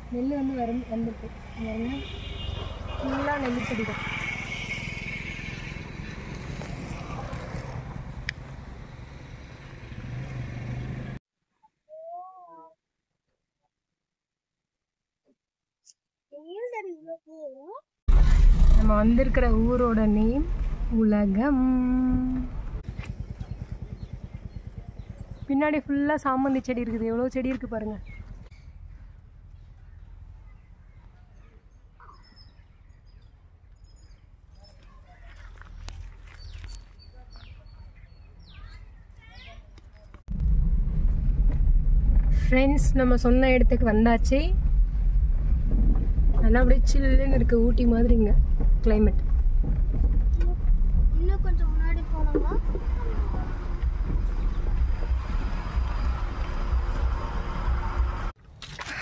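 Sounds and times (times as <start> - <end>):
small birds chirping: 28.0 - 40.2
wind buffeting microphone: 40.3 - 58.3.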